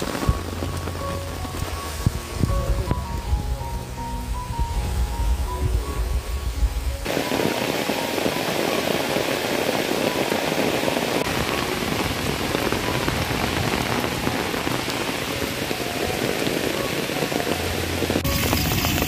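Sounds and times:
heavy rain falling: 0:00.0 - 0:19.0.

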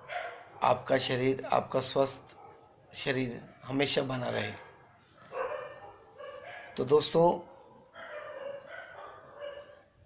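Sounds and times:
dog barking: 0:00.0 - 0:00.9, 0:02.3 - 0:02.8, 0:04.4 - 0:09.9
man speaking: 0:00.6 - 0:02.3, 0:02.9 - 0:04.7, 0:06.8 - 0:07.5.

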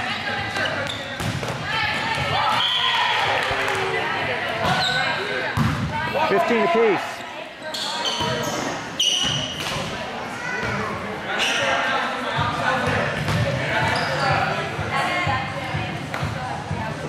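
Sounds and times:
players and spectators chattering: 0:00.0 - 0:17.0
ball bouncing on court floor: 0:00.8 - 0:02.4, 0:05.6 - 0:06.0.

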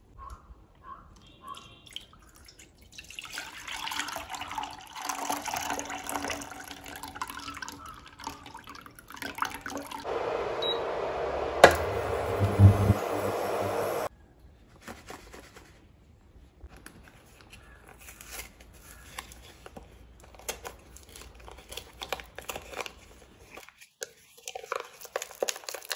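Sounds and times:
milk pouring into a metal saucepan: 0:01.8 - 0:10.0
steady hiss: 0:10.1 - 0:14.1
sharp knock: 0:11.6 - 0:13.0.

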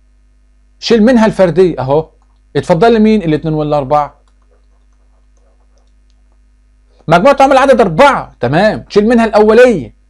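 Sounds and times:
electrical mains hum: 0:00.0 - 0:10.0
faint ticks: 0:04.2 - 0:07.1.

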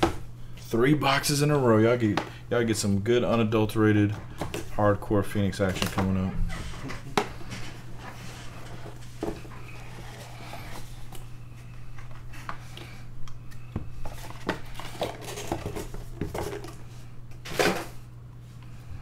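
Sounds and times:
low electrical hum: 0:00.0 - 0:19.0.

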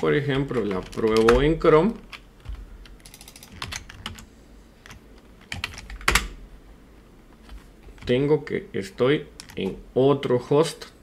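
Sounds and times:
typing on computer keyboard: 0:00.4 - 0:04.2, 0:04.9 - 0:06.3.

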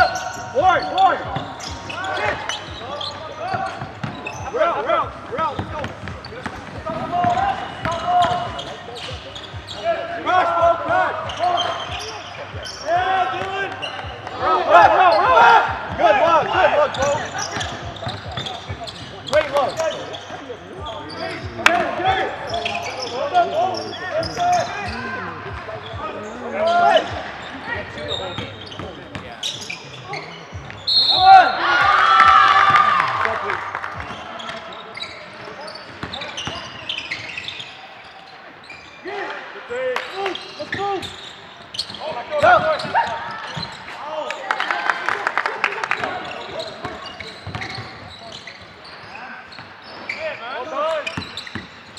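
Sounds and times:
players shouting in gym: 0:09.7 - 0:20.1, 0:30.1 - 0:38.1, 0:39.0 - 0:45.1.

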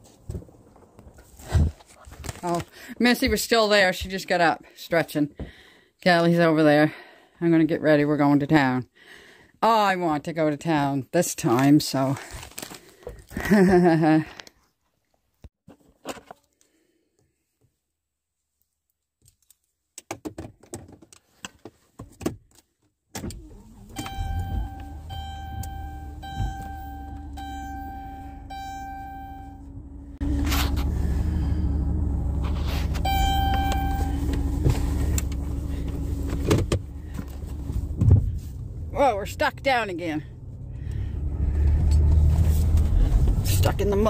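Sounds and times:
engine rumble: 0:23.4 - 0:44.0
dashboard warning chime beeping: 0:23.7 - 0:37.7.

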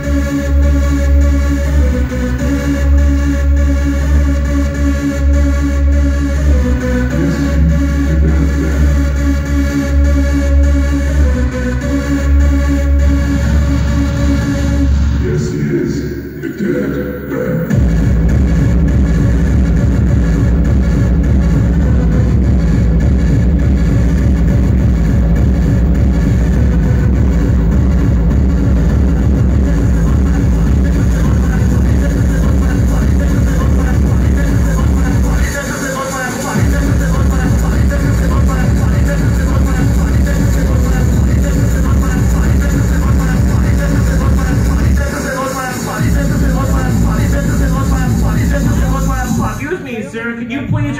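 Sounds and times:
loud hard techno music: 0:00.0 - 0:50.9.

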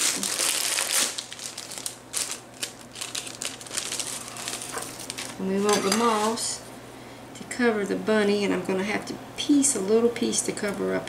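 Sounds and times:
plastic packaging crinkling: 0:00.0 - 0:06.5.

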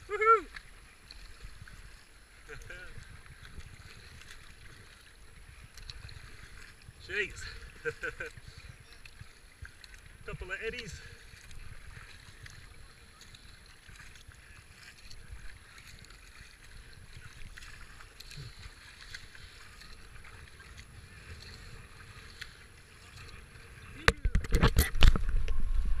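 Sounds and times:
faint splashes: 0:00.0 - 0:26.0
kayak paddle strokes: 0:00.0 - 0:26.0
water running along a hull: 0:00.0 - 0:26.0.

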